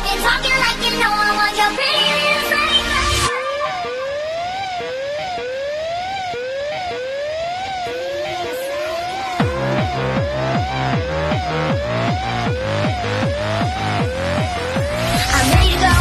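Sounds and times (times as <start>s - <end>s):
electronic pop music: 0.0s - 16.0s
siren-like rising sweep: 2.5s - 16.0s
deep kick drum beat: 9.4s - 16.0s.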